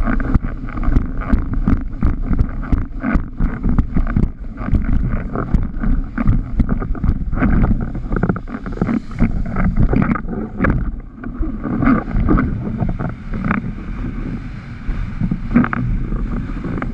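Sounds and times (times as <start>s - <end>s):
board slapping waves: 0.0s - 16.9s
water rushing: 0.0s - 16.9s
wind buffeting microphone: 0.0s - 16.9s.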